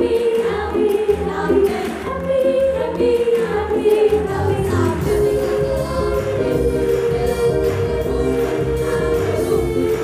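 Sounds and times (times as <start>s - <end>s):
girls singing into microphones: 0.0s - 10.0s
pop music with steady beat: 4.7s - 10.0s.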